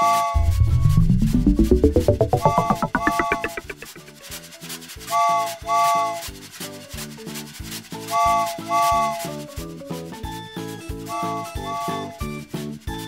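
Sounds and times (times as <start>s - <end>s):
cartoon train chugging: 0.4s - 4.1s.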